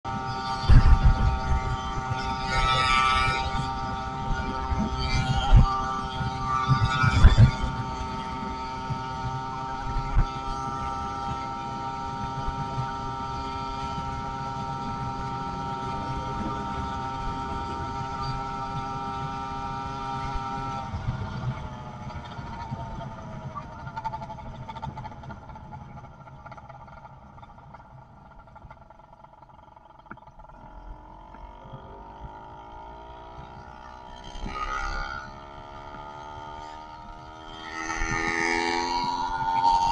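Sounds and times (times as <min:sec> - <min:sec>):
wind buffeting microphone: 0:00.1 - 0:10.7
two-stroke engine running: 0:00.1 - 0:39.9.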